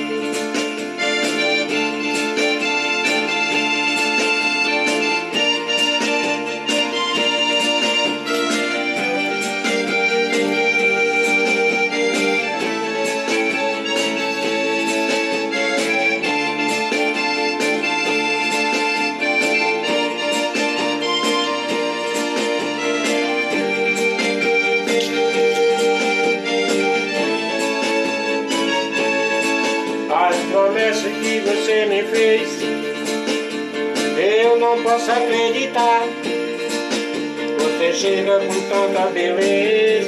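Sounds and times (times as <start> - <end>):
electronic keyboard music: 0.0 - 40.0.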